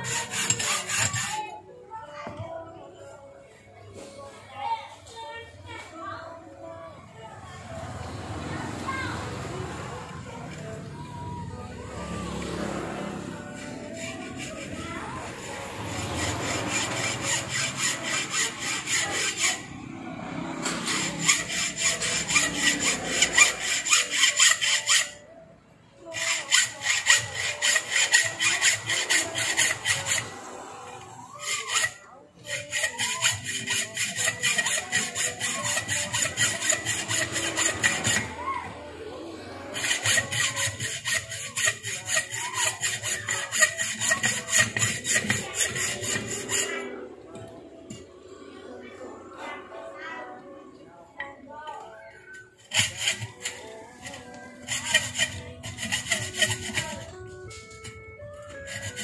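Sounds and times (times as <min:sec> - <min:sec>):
hacksaw cutting steel: 0:00.0 - 0:01.6, 0:08.7 - 0:25.3, 0:26.0 - 0:48.6, 0:52.3 - 0:59.0.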